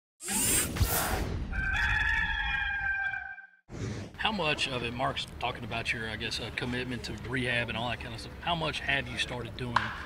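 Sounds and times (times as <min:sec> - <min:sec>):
rooster crowing: 0:01.5 - 0:03.6.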